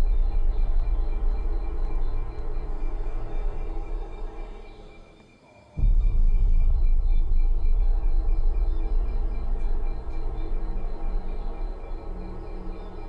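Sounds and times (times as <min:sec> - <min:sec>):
loud low rumble: 0:00.0 - 0:04.8, 0:05.8 - 0:13.0.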